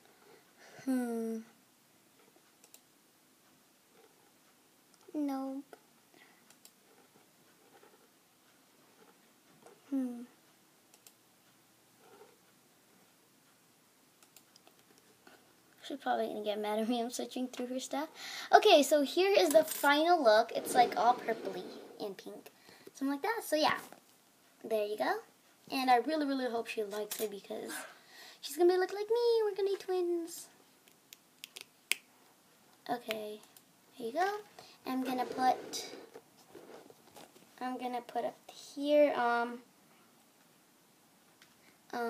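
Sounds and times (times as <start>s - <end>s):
faint computer mouse clicks: 2.6s - 2.9s, 6.4s - 6.8s, 10.9s - 11.2s, 14.2s - 15.1s.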